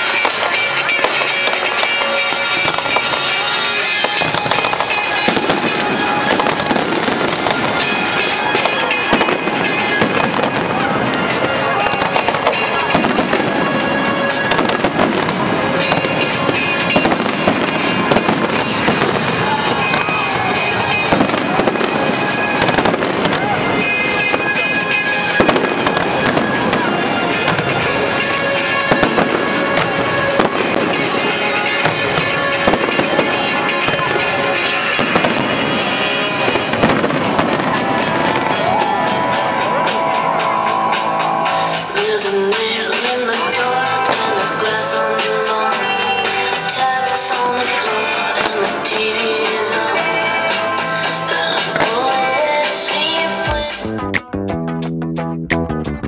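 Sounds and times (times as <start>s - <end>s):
fireworks bursting and crackling: 0.0s - 54.9s
music playing: 0.0s - 56.0s.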